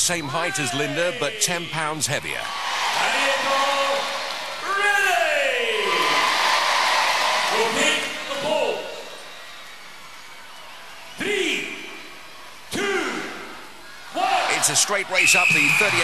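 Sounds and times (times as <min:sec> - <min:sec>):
crowd cheering and shouting: 0:00.0 - 0:16.0.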